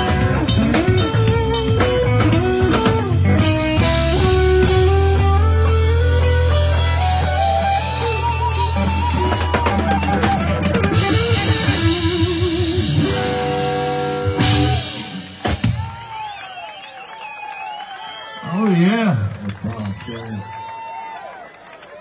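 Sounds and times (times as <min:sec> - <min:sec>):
electric guitar lead: 0:00.0 - 0:15.8
bass line: 0:00.0 - 0:16.0
drum kit: 0:00.0 - 0:16.4.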